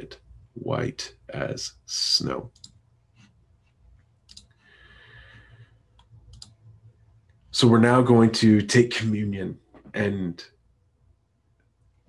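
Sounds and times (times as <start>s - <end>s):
soft clicks: 2.5s - 4.6s, 5.9s - 7.4s.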